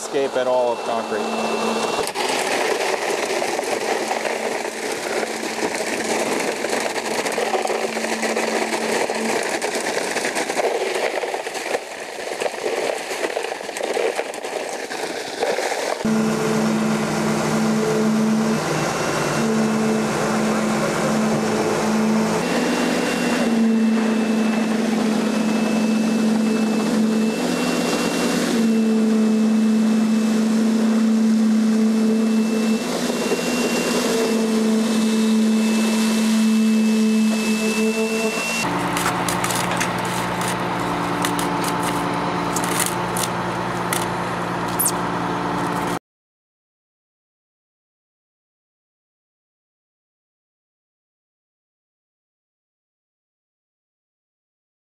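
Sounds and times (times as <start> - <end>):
concrete vibrator humming: 0.0 - 10.6, 16.0 - 46.0
low machine drone: 0.0 - 10.6, 16.0 - 46.0.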